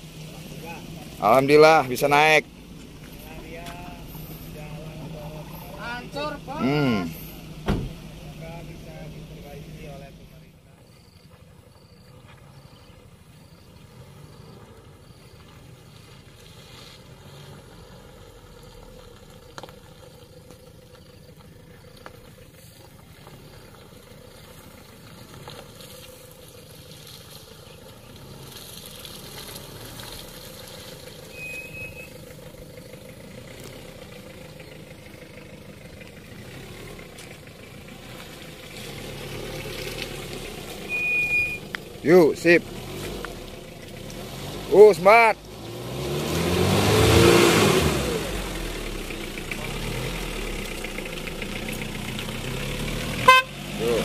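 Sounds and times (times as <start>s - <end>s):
pickup engine running at low revs: 0.0s - 54.0s.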